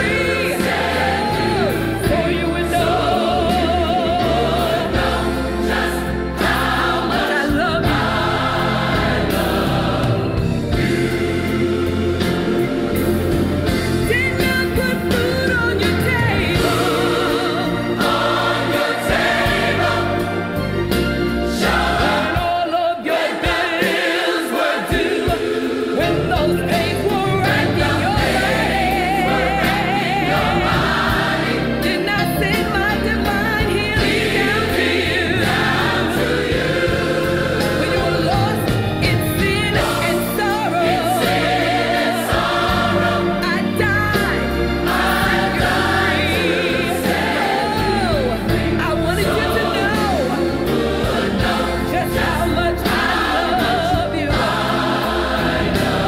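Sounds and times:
band accompaniment: 0.0s - 56.0s
choir singing with vibrato: 0.0s - 56.0s.

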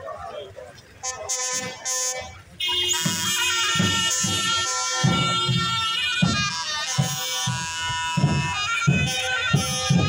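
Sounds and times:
buzzy reedy wind instrument: 1.0s - 10.0s.

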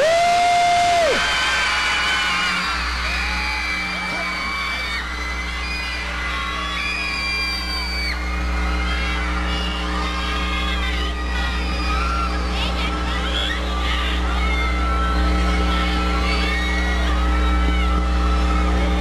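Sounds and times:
crowd screaming and cheering: 0.0s - 19.0s
steady musical drone: 0.0s - 19.0s
high-pitched shrieks: 0.9s - 18.7s.

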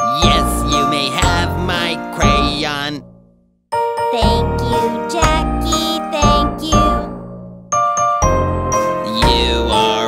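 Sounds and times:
upbeat children's song: 0.0s - 3.0s, 3.8s - 7.3s, 8.1s - 10.0s.

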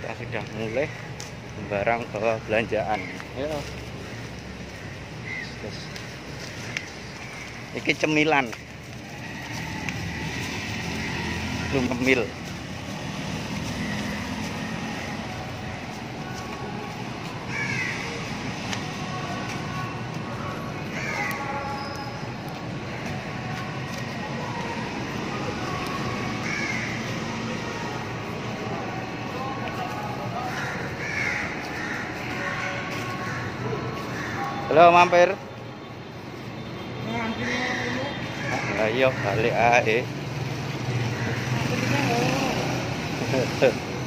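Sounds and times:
road traffic rumble: 0.0s - 44.0s
steady background din: 0.0s - 44.0s
harsh bird calls: 0.5s - 23.6s, 26.0s - 27.8s, 30.2s - 35.3s.

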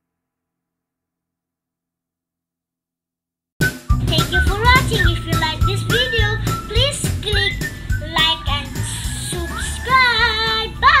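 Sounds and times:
child singing: 4.1s - 11.0s.

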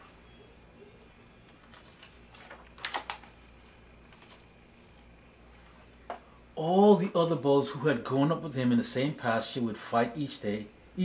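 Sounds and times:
paper page rustling: 1.6s - 3.3s.

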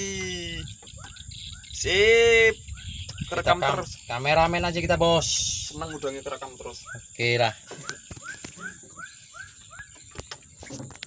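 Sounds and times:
animal chirping: 7.8s - 10.2s.

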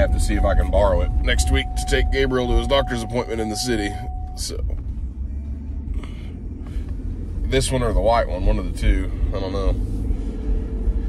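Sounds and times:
road noise: 0.0s - 11.0s
truck engine rumble: 0.0s - 11.0s.

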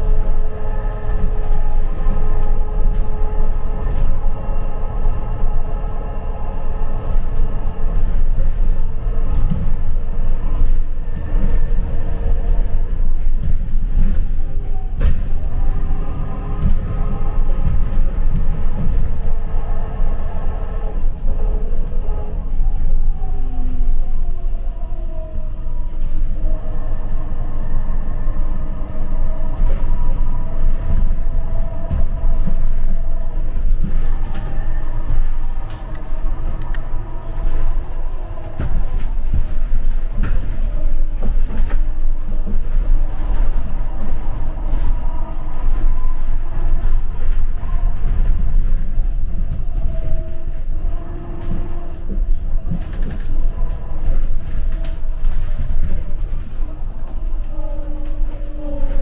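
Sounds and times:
bus drive whine: 0.0s - 59.0s
road rumble inside bus: 0.0s - 59.0s.

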